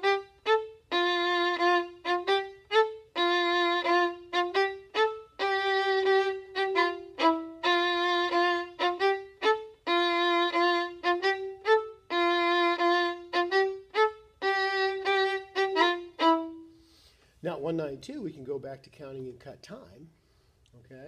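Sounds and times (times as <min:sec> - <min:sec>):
solo violin bowed: 0:00.0 - 0:17.2.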